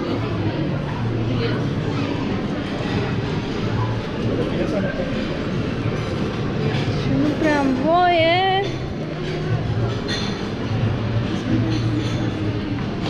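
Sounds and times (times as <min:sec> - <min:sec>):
many people chattering: 0:00.0 - 0:13.0.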